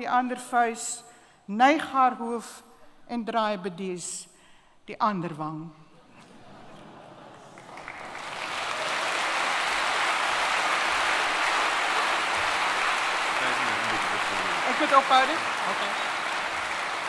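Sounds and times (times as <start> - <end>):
audience applause: 7.4 - 17.0.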